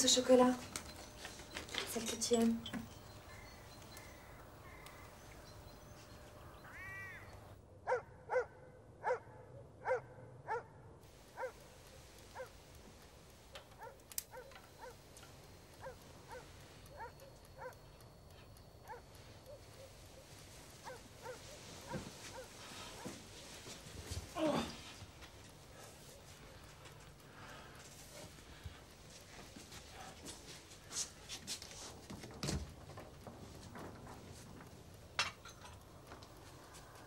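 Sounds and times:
dog barking: 7.9 - 10.8, 11.4 - 11.7, 12.3 - 12.6, 13.8 - 15.0, 15.8 - 17.8, 18.8 - 19.9, 20.8 - 23.2.

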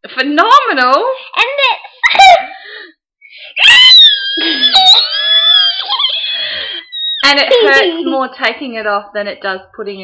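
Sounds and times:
child screaming: 3.5 - 7.8.

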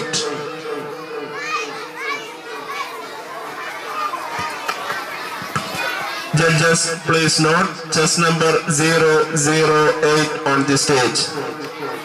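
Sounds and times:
children chattering and calling out: 0.0 - 12.0.

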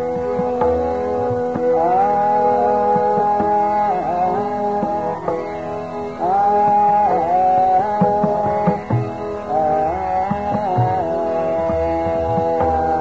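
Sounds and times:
man singing: 0.0 - 13.0
tabla strokes: 0.0 - 13.0.

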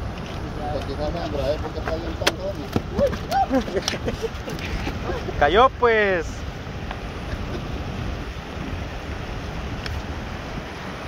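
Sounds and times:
low wind rumble: 0.0 - 11.0.

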